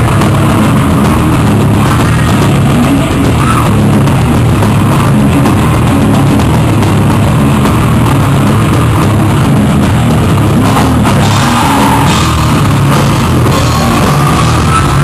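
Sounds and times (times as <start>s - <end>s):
drum kit: 0.0s - 15.0s
live rock band playing: 0.0s - 15.0s.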